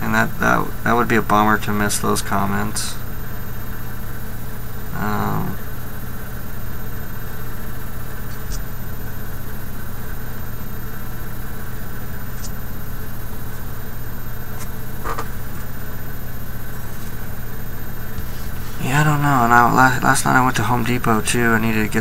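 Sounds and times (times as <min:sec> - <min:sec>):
low mechanical hum: 0:00.0 - 0:22.0.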